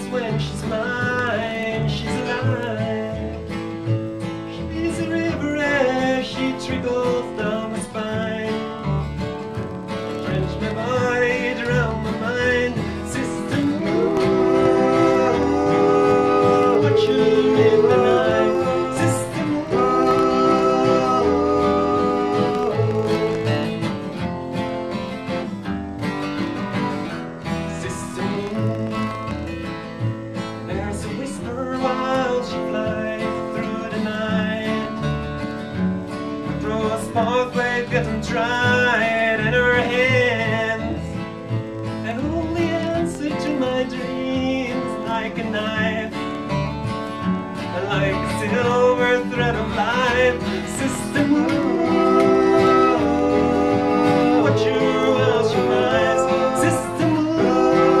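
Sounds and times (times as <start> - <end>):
acoustic guitars: 0.0 - 58.0
plucked double bass: 0.0 - 58.0.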